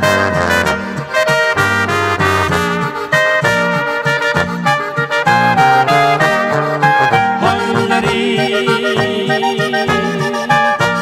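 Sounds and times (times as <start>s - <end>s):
accordion and brass waltz: 0.0s - 11.0s.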